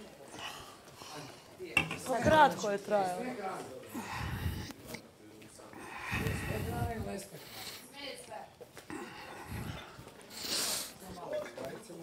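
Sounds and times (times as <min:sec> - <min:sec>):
dishes and glassware clattering: 0:01.8 - 0:02.4
quiet voices: 0:03.4 - 0:12.0.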